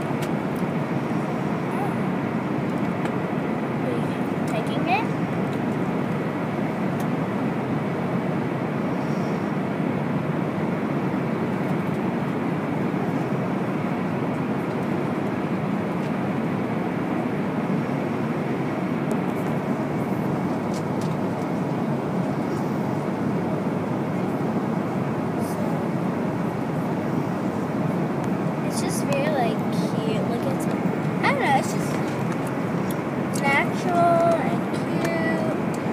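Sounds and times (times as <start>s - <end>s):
airliner cabin noise: 0.0s - 35.9s.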